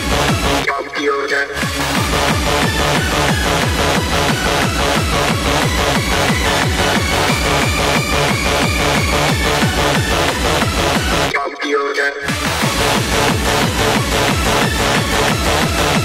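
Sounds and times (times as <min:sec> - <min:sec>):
hard electronic dance music: 0:00.0 - 0:16.0
kick drum: 0:01.6 - 0:11.3, 0:12.3 - 0:16.0.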